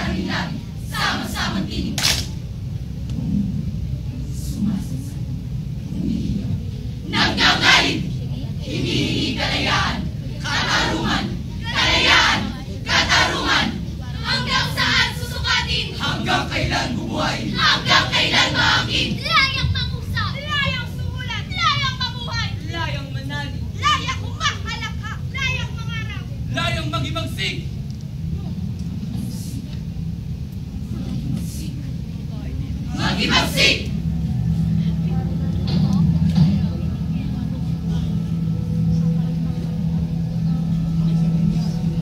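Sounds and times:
faint voices: 0:00.0 - 0:42.0
steady low hum: 0:00.0 - 0:42.0.

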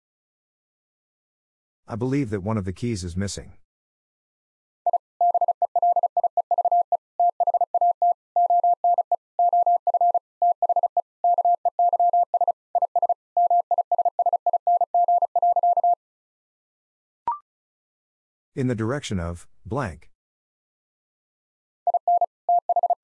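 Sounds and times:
morse code tone: 0:04.9 - 0:16.0
person speaking: 0:18.6 - 0:20.1.

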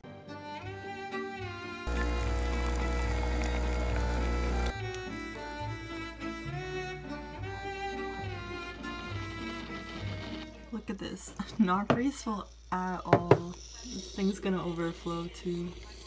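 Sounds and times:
music with bowed strings: 0:00.1 - 0:01.9, 0:04.7 - 0:10.8
espresso machine pump humming: 0:01.9 - 0:05.4
espresso streaming into mug: 0:01.9 - 0:05.5.

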